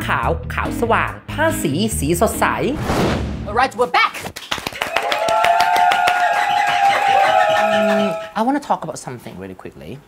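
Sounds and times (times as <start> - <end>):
people clapping quickly: 4.2 - 8.3.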